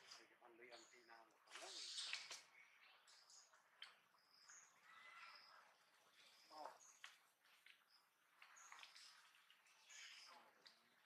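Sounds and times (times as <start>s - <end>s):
faint high bird chirps: 0.0s - 11.0s.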